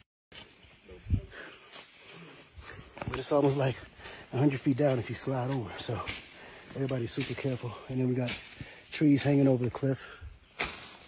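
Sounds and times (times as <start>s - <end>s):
insects chirring: 0.3s - 11.0s.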